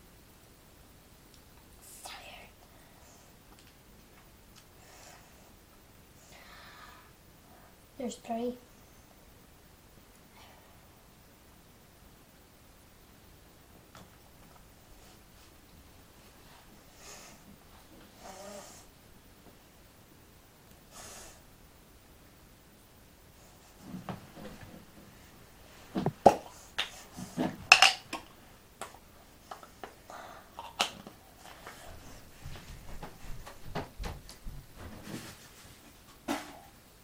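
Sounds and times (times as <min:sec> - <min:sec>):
boy whispering: 0:01.8 - 0:03.3
boy breathing hard: 0:06.2 - 0:07.1, 0:16.4 - 0:17.5, 0:30.1 - 0:30.6.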